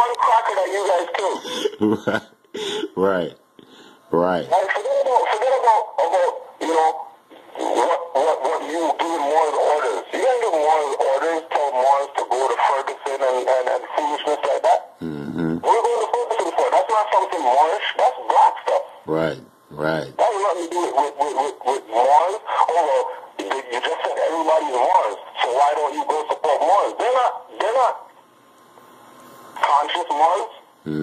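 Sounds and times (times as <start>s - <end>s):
man talking: 0.0s - 3.4s, 4.1s - 7.0s, 7.6s - 28.0s, 29.6s - 31.0s.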